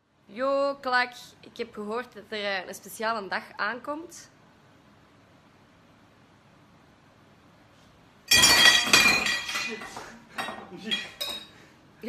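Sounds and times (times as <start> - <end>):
tableware clinking with ringing tone: 8.3 - 9.8.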